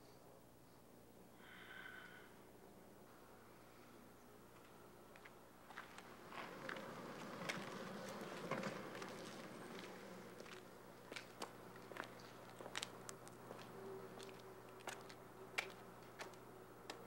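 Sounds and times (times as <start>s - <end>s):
faint footsteps walking away: 4.5s - 17.0s.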